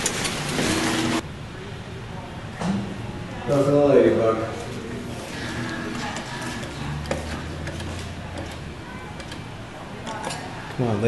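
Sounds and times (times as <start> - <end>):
claw machine humming: 0.0 - 1.2, 4.8 - 10.8.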